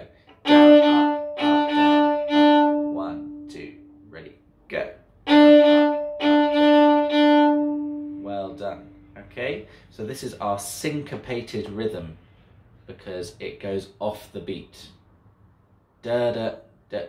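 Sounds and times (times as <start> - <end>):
man talking: 0.0 - 0.2, 2.8 - 5.0, 8.2 - 12.2, 12.9 - 15.0, 16.0 - 17.0
violin string bowed in rhythm: 0.0 - 4.3, 5.2 - 9.3.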